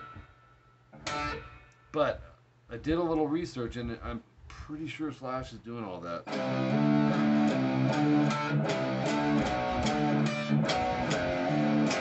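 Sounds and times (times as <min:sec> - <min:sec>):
electric guitar notes ringing: 0:00.0 - 0:02.0, 0:06.3 - 0:12.0.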